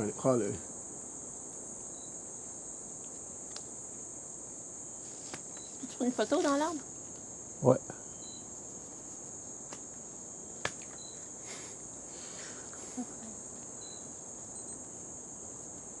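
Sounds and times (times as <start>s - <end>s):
insects chorus: 0.0s - 16.0s
faint chirps: 1.9s - 2.2s, 7.7s - 8.6s, 10.9s - 14.8s.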